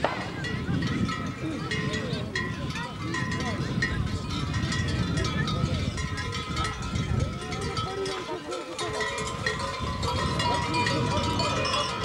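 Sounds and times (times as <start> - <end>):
large metal bells clanging: 0.0 - 12.0
people talking: 0.0 - 12.0.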